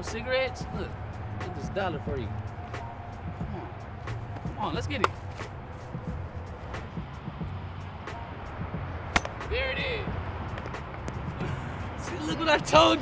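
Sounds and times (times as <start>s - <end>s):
baseball bat cracking ball: 9.1s - 9.6s
excited shout: 9.5s - 10.1s.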